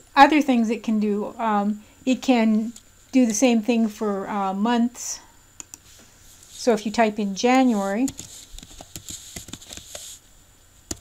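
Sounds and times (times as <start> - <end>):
typing on computer keyboard: 8.0 - 10.0.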